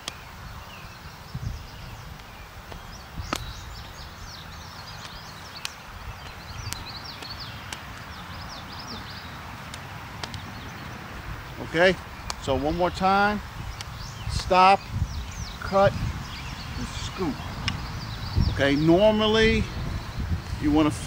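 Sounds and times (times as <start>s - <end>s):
bird chirps: 0.0s - 9.5s, 10.2s - 21.0s
wind rumble on microphone: 0.0s - 21.0s.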